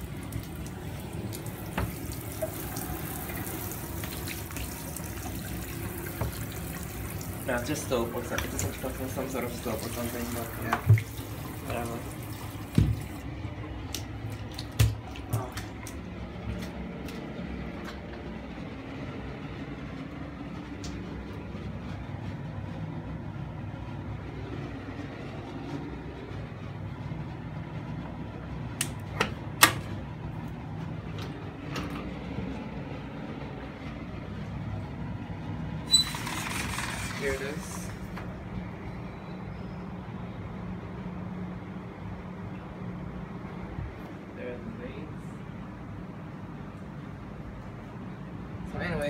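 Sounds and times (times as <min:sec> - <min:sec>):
low background hum: 0:00.0 - 0:49.0.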